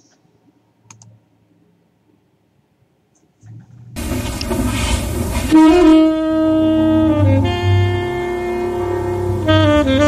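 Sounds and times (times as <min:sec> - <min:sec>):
low rumble: 0:03.5 - 0:10.0
hiss-like rush: 0:04.0 - 0:05.7.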